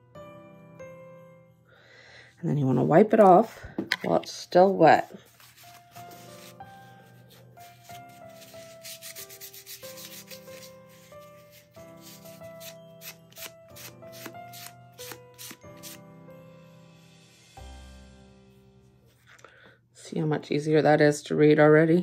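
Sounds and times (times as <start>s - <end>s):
quiet background music: 0.0s - 22.0s
paper towel rubbing on resin: 5.2s - 12.8s.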